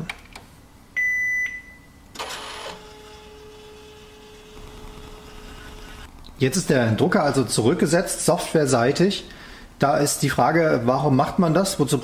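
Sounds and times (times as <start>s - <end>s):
printer button beep: 1.0s - 1.9s
printer motor hum: 2.2s - 6.1s.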